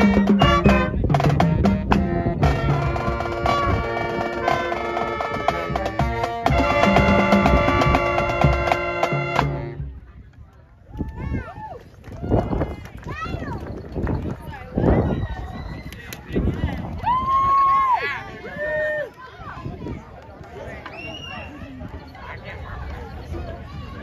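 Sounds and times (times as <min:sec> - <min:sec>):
bass drum: 0:00.0 - 0:10.0
marching brass band: 0:00.0 - 0:10.0
scattered voices: 0:18.0 - 0:24.0.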